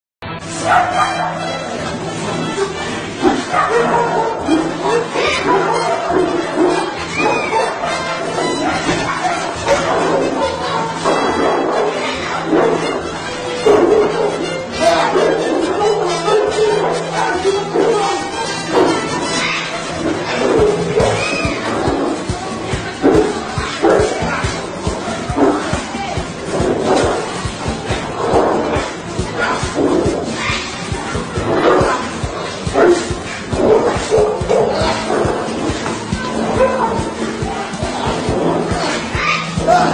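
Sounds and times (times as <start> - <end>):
background music: 0.2 - 39.9
dog barking: 0.6 - 1.4, 3.2 - 10.8, 32.8 - 35.4.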